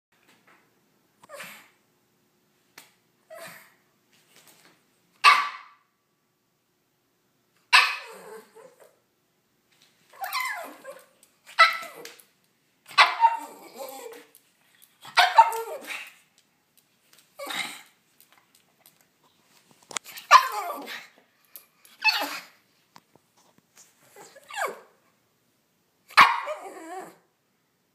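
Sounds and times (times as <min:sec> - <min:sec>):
dog barking: 0:05.2 - 0:05.8, 0:07.8 - 0:08.2, 0:12.9 - 0:13.4, 0:15.1 - 0:15.9, 0:26.1 - 0:26.6.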